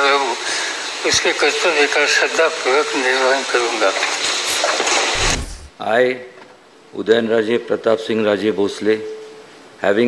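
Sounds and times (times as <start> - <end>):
steady hiss: 0.0 - 7.1
short low thump: 5.1 - 5.8.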